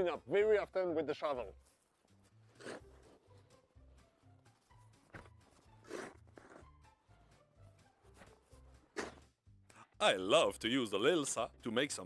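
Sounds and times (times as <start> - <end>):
quiet background music: 0.0 - 12.0
snow shovel scraping snow: 2.6 - 2.8, 5.8 - 6.6.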